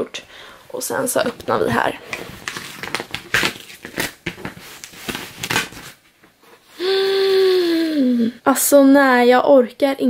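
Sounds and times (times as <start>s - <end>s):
cardboard crinkling and scraping: 1.0s - 6.6s.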